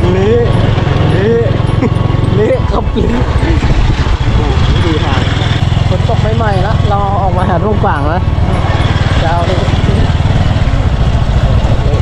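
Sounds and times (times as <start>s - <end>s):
small motorbike engine running: 0.0s - 12.0s
wind rumble on microphone: 2.7s - 6.0s, 7.2s - 12.0s.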